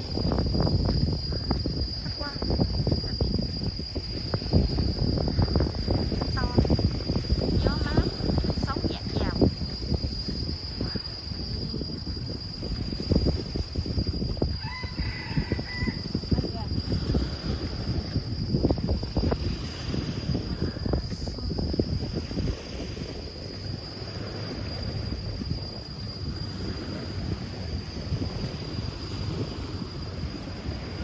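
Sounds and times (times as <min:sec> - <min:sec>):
high-pitched insect drone: 0:00.0 - 0:31.0
wind buffeting microphone: 0:00.0 - 0:31.0
rooster crowing: 0:14.5 - 0:16.4.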